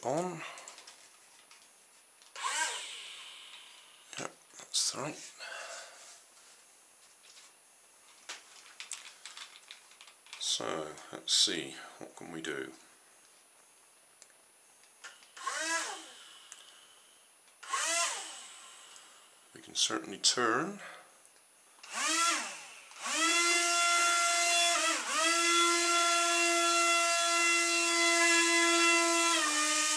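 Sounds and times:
small electric propeller motor whirring: 2.4s - 3.0s, 15.4s - 16.2s, 17.6s - 18.9s, 21.8s - 29.9s.

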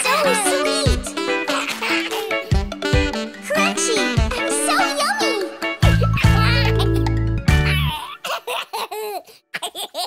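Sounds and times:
cartoon baby giggling: 1.4s - 2.5s, 3.5s - 10.0s.

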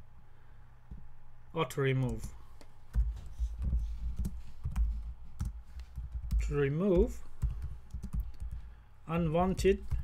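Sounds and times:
computer keyboard key presses: 2.9s - 8.6s.

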